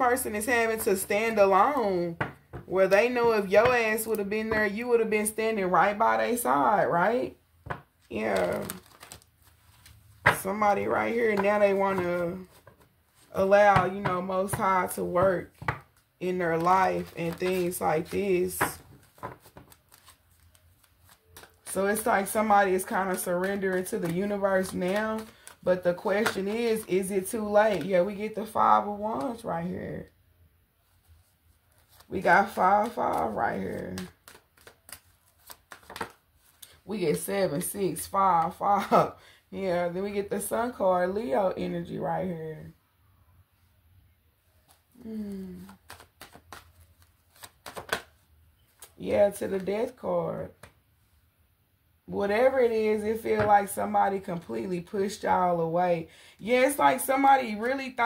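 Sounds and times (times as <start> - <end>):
cards shuffling by hand: 7.6 - 28.0, 31.1 - 37.2, 44.6 - 49.7.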